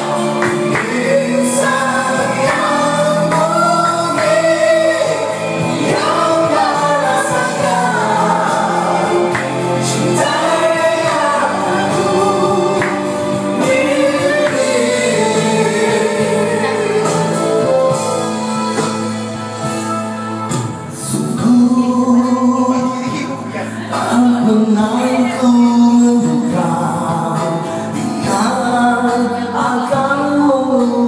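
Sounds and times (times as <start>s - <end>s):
man singing into a microphone: 0.0s - 19.7s, 20.7s - 31.0s
karaoke backing track: 0.0s - 31.0s.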